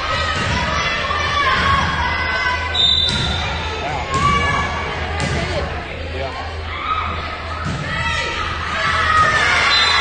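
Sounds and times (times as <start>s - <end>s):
voices in a gymnasium: 0.0s - 10.0s.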